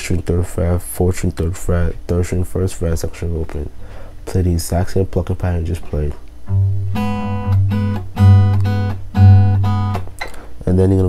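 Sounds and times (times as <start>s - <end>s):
fingerpicked acoustic guitar: 6.4s - 10.5s.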